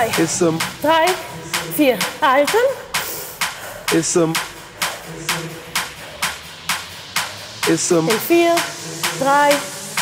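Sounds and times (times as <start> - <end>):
music with steady drum beat: 0.0 - 10.0.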